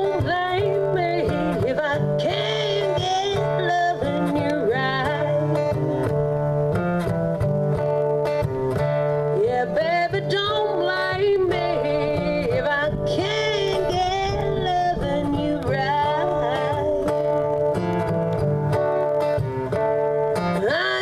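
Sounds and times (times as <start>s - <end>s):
acoustic guitar strumming chords: 0.0s - 21.0s
sliding lead guitar melody: 0.0s - 21.0s.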